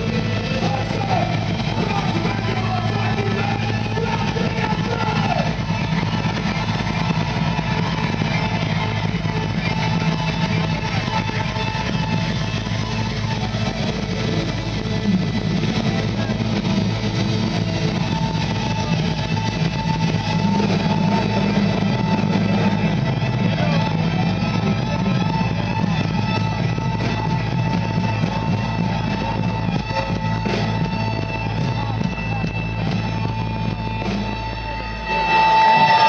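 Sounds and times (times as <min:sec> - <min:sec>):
electric guitar: 0:00.0 - 0:36.0
live metal band music: 0:00.0 - 0:36.0.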